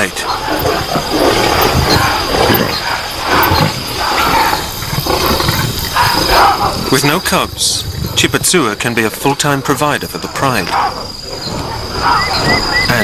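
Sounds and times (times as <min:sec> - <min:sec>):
lionesses growling and snarling: 0:00.0 - 0:13.0.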